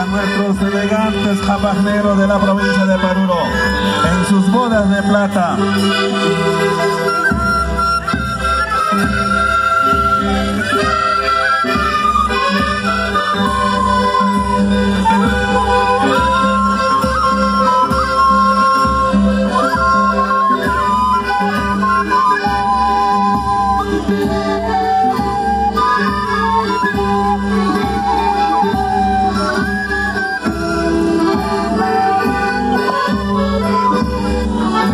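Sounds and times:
reed-like melody: 0.0 - 34.9.

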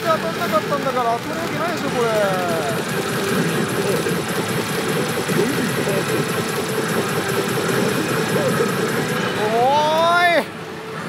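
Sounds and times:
steel balls clattering: 0.0 - 9.8
electronic machine sounds: 0.0 - 10.5.

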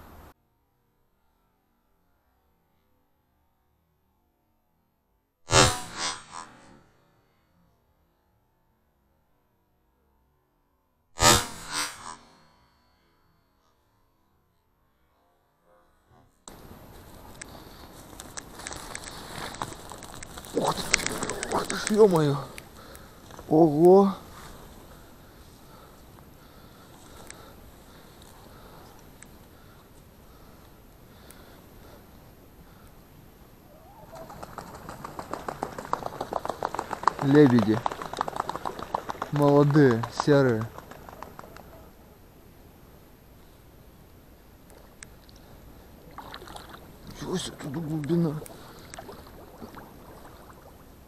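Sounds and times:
swan wingbeats: 16.5 - 25.7, 33.7 - 42.0, 45.9 - 51.0
feet slapping water: 46.0 - 51.0.

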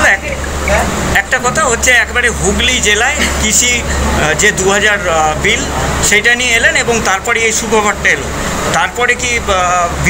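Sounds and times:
steady low hum: 0.0 - 10.0
man speaking into microphones: 1.1 - 10.0.

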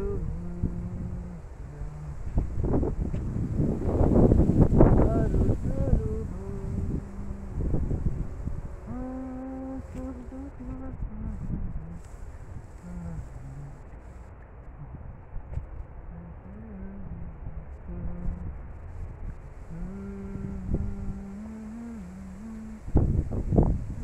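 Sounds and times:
man singing slow melody: 0.0 - 14.0, 16.1 - 18.6, 19.6 - 23.4
wind buffeting microphone: 0.0 - 24.0.

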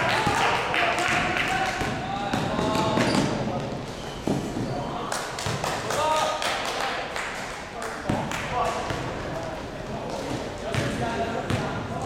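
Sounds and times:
basketball bouncing in sports hall: 0.1 - 3.7, 5.4 - 5.6, 10.6 - 12.0.

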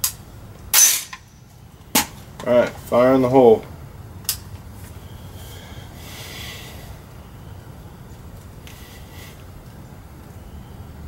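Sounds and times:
person breathing out through nose: 5.0 - 7.1, 8.7 - 9.5.

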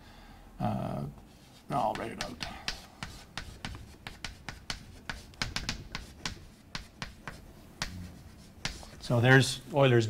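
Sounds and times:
chalk tapping on blackboard: 1.4 - 9.6.

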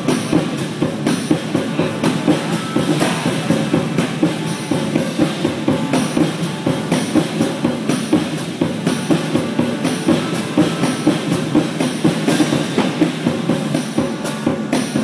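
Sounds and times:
rapid drum strokes: 0.0 - 15.0.

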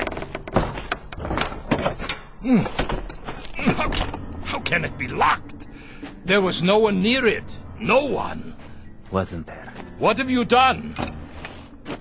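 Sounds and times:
metal latch rattling: 0.0 - 4.4.

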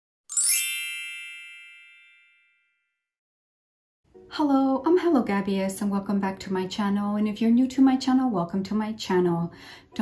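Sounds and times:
high-pitched chime ringing: 0.3 - 2.9.

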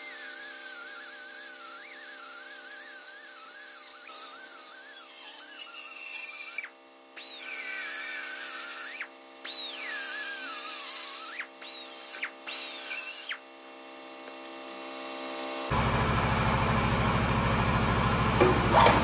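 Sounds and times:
air saw cutting metal: 0.0 - 13.6.

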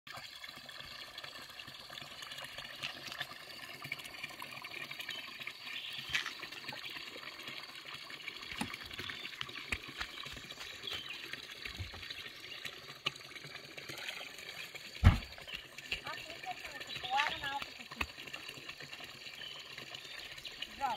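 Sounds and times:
rushing water hiss: 14.9 - 20.9
loud thump: 15.0 - 15.3.

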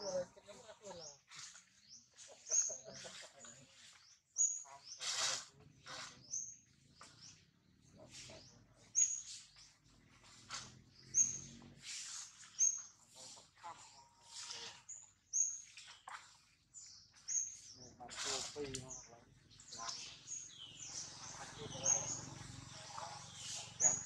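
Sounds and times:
small bird chirping: 0.0 - 24.0.

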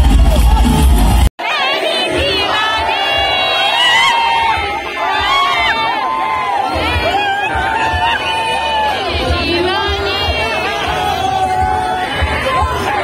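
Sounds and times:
concert crowd cheering and screaming: 0.0 - 13.0
loud music: 0.0 - 13.0.

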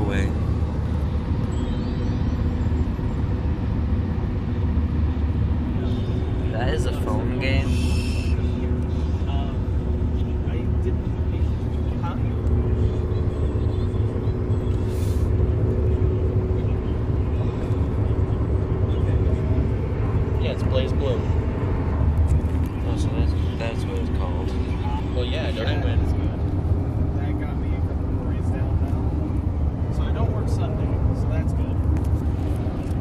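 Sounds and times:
car road and engine rumble: 0.0 - 33.0
constant hum: 0.0 - 33.0.

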